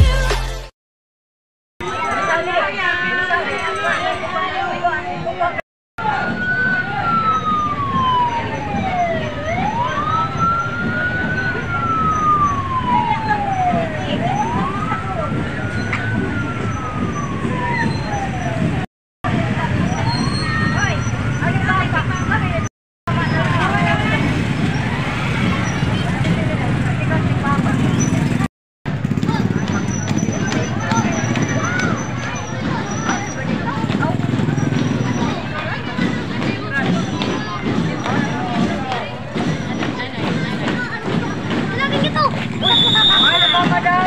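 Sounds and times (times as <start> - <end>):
street crowd noise: 1.8 - 44.0
police siren wailing: 6.0 - 22.7
motorcycle engines running: 6.4 - 44.0.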